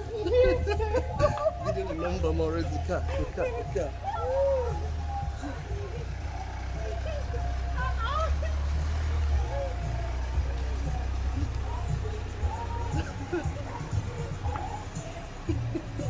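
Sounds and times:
car engine rumbling: 0.0s - 16.0s.

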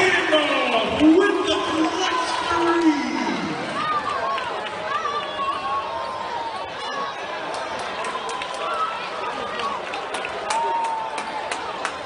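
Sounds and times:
arena crowd chatter: 0.0s - 12.0s.

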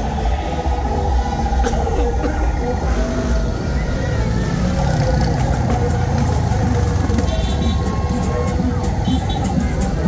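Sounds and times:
motorcycle and car engines rumbling: 0.0s - 10.0s
voices: 0.0s - 10.0s.

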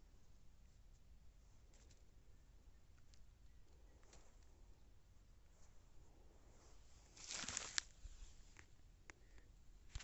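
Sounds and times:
faint rustle of plant stalks: 0.0s - 10.0s.

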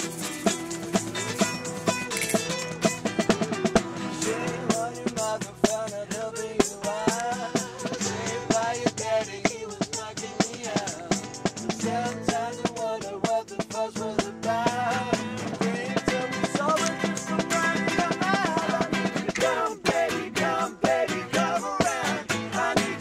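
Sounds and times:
acoustic band playing: 0.0s - 23.0s.

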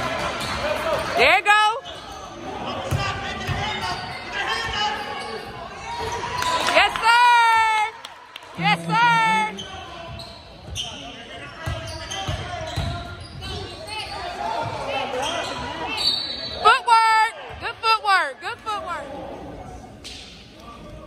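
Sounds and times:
sneakers squeaking on court: 8.8s - 16.6s.

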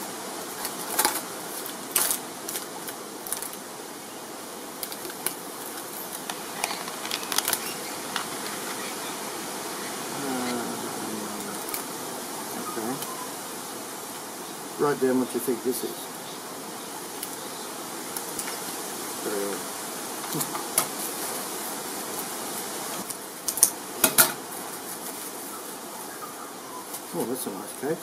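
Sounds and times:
packaging clicks and crackles: 4.8s - 8.9s.

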